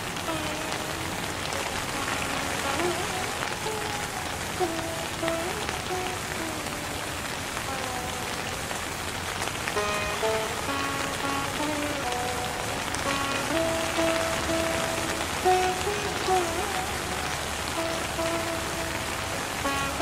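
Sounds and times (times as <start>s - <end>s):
rain falling on water: 0.0s - 20.0s
slow instrumental melody: 9.7s - 20.0s.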